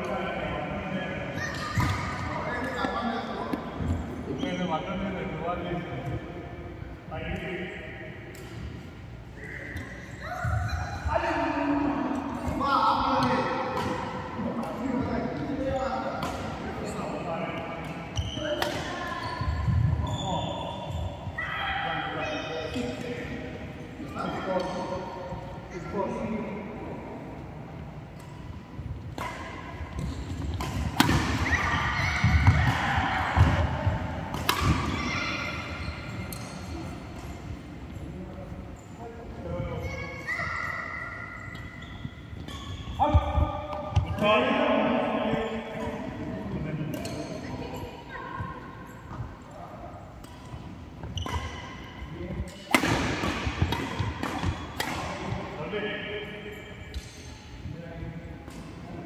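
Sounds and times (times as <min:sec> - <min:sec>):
players' voices: 0:00.0 - 0:41.5
racket hitting shuttlecock: 0:29.2 - 0:35.0, 0:52.5 - 0:55.4.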